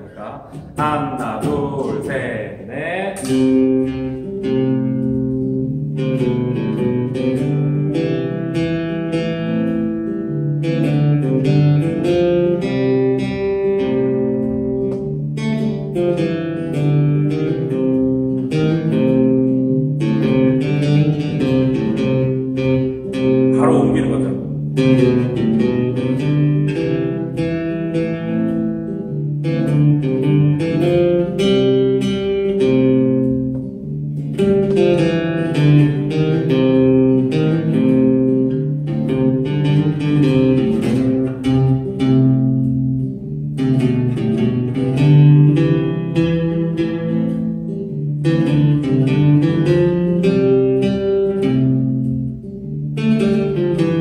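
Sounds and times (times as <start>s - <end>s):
guitar single-note lead: 0.0s - 54.0s
sustained guitar chords: 0.0s - 54.0s.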